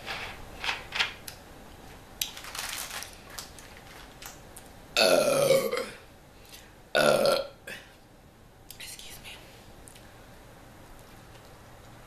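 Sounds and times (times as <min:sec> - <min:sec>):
woman burping loudly: 0:05.0 - 0:06.0, 0:07.0 - 0:07.8.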